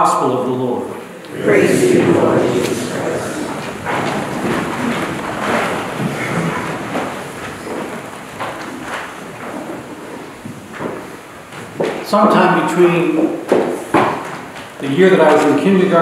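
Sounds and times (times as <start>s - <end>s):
people shuffling in pews: 1.2s - 16.0s
knocks on wooden benches: 2.6s - 12.1s, 13.1s - 15.4s.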